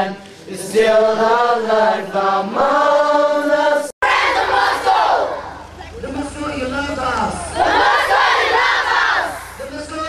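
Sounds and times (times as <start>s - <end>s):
congregation responding in unison: 0.0s - 10.0s.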